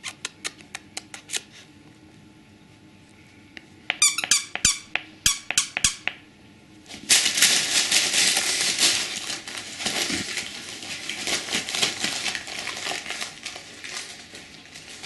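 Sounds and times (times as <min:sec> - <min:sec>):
squeaky dog toy squeaks: 0:03.9 - 0:06.1
wrapping paper crinkling and tearing: 0:06.9 - 0:15.0.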